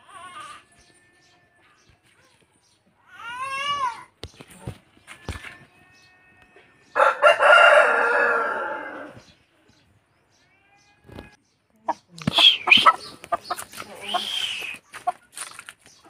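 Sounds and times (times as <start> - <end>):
rooster crowing: 6.9 - 9.2.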